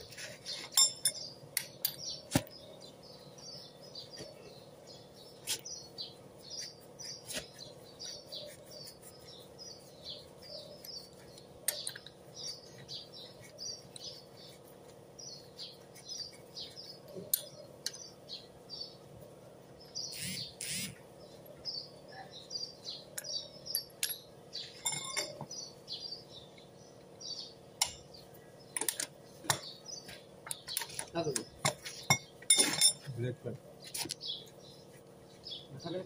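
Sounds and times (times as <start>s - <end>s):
small birds chirping: 0.0s - 36.0s.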